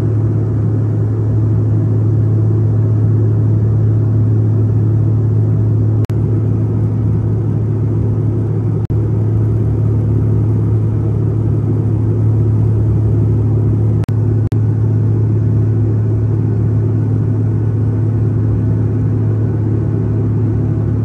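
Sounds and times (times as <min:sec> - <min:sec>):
airliner cabin drone: 0:00.0 - 0:21.0.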